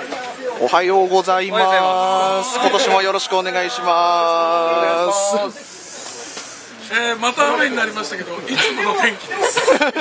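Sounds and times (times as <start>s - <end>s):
faint voices: 0.0s - 9.8s.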